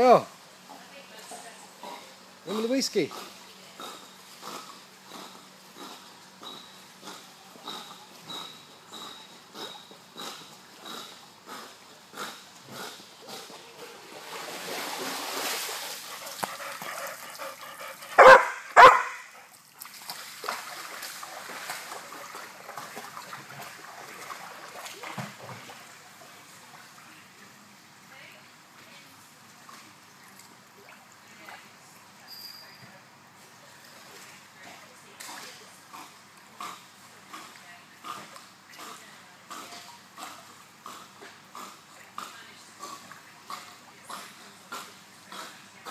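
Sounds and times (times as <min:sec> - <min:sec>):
dog splashing in water: 0:13.4 - 0:26.4
dog barking: 0:18.2 - 0:19.3.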